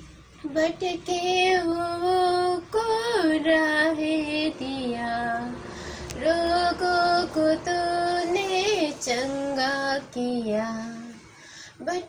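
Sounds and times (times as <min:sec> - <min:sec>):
woman singing devotional song: 0:00.4 - 0:12.0.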